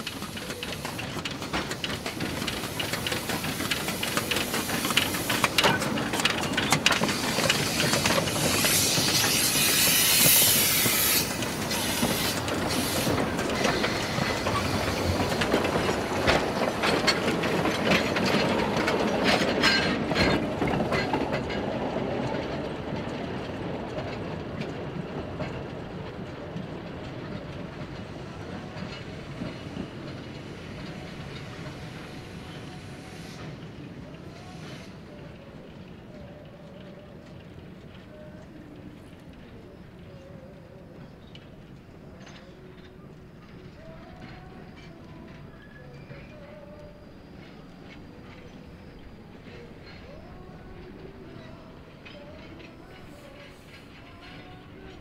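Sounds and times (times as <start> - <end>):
steam hissing: 0.0 - 20.7, 29.2 - 35.2
wheels clicking over rail joints: 0.0 - 32.6
steam train running past: 0.0 - 55.0.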